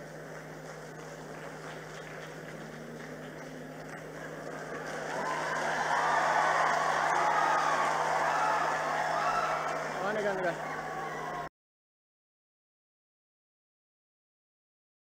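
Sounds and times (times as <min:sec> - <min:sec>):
steady low hum: 0:00.0 - 0:11.4
audience applause: 0:00.0 - 0:11.5.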